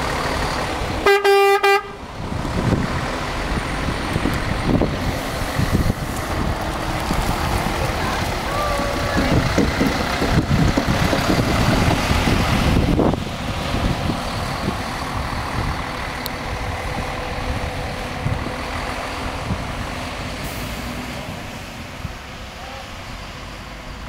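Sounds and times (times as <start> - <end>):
coach diesel engines rumbling: 0.0 - 24.0.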